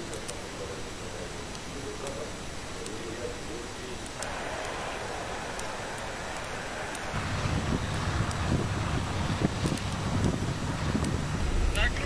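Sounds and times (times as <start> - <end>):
tracked vehicles rumbling: 4.2 - 12.0
wind noise on microphone: 7.2 - 12.0.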